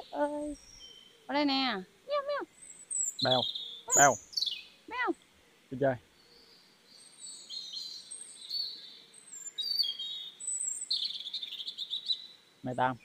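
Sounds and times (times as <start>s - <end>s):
small birds chirping: 0.0s - 13.0s.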